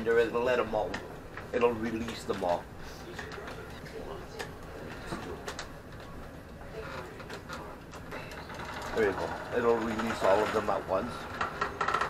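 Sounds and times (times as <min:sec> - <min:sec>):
marbles rolling on wooden tracks: 0:06.9 - 0:12.0.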